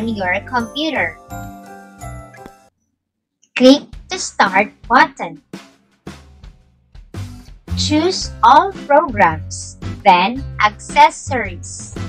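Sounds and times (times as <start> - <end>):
chiming tinkling music: 0.6 - 2.4.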